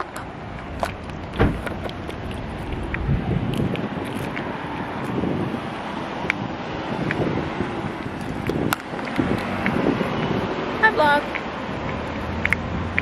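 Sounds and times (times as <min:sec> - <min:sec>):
wind buffeting microphone: 0:00.1 - 0:13.0.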